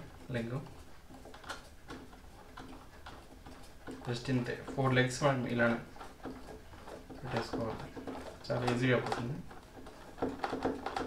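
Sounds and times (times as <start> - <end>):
table leg ticking and creaking: 0.0 - 11.0.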